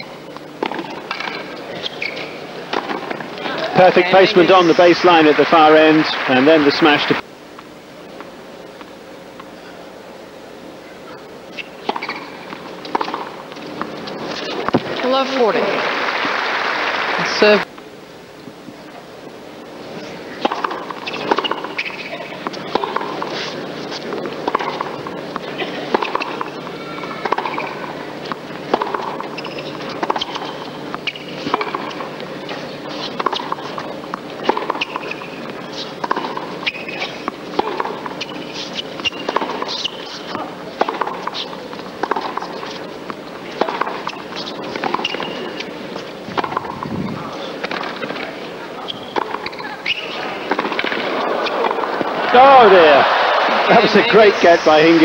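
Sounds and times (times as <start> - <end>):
rackets striking tennis ball: 0.0 - 4.0, 11.6 - 15.4, 20.4 - 52.7
tennis ball bouncing: 0.0 - 4.0, 11.6 - 15.5, 20.4 - 52.1
arena crowd noise: 0.6 - 17.8, 18.6 - 30.7, 39.3 - 55.0.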